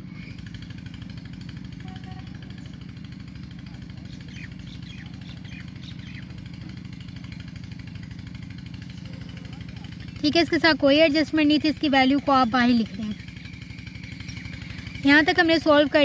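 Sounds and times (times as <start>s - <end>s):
low machine hum: 0.0s - 16.0s.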